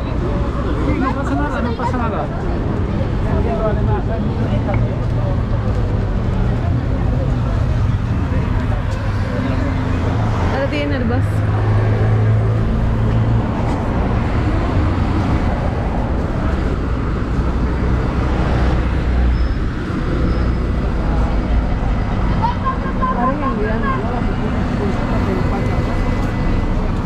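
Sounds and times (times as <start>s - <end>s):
city street traffic: 0.0s - 27.0s
people talking walking past: 0.0s - 27.0s
heavy vehicle engine running: 2.2s - 27.0s.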